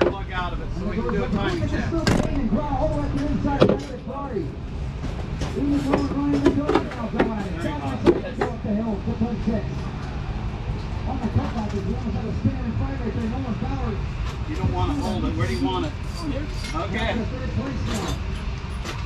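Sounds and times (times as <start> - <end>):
people talking: 0.0 - 4.6, 5.4 - 9.9, 11.0 - 18.2
low rumble: 0.0 - 6.3, 8.6 - 14.9.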